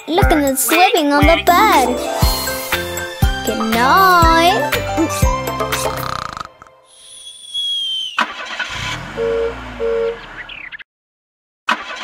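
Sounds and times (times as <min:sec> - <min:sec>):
music: 0:00.0 - 0:06.6
sharp hit: 0:02.0 - 0:03.4
descending whistle: 0:06.9 - 0:08.3
cartoon car engine starting: 0:08.1 - 0:10.8, 0:11.7 - 0:12.0.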